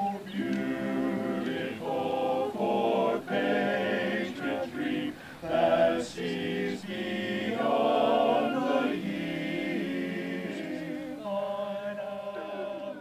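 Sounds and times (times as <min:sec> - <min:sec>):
men's chorus singing a cappella: 0:00.0 - 0:13.0.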